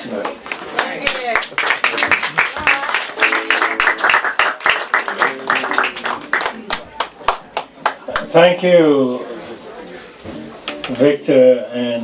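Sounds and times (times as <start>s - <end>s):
audience clapping: 0.0s - 8.3s.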